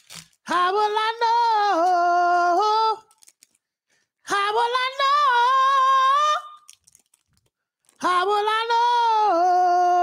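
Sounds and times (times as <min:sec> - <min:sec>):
plastic wrapper crinkling: 0:00.0 - 0:00.5, 0:03.0 - 0:03.8, 0:06.4 - 0:08.2.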